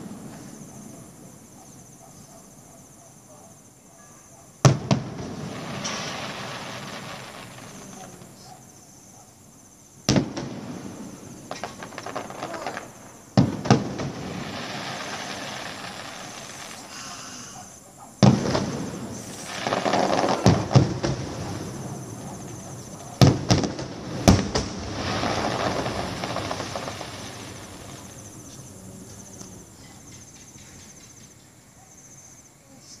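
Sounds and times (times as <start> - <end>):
firework shells bursting: 4.7 - 8.4, 10.1 - 17.4, 18.2 - 31.4
firework crackling: 4.7 - 8.5, 10.1 - 31.1.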